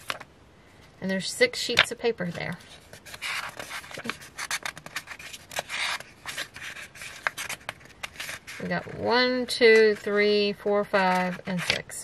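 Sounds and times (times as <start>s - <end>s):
paper sheets rustling: 1.8s - 10.3s.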